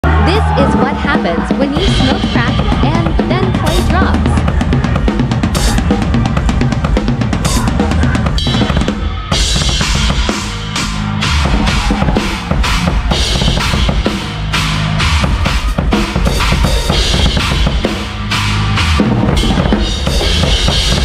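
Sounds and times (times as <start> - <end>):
fast drum kit playing: 0.0 - 21.0.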